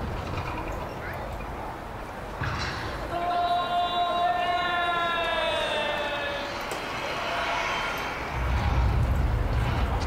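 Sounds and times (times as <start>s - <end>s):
deep low rumble: 8.3s - 10.0s.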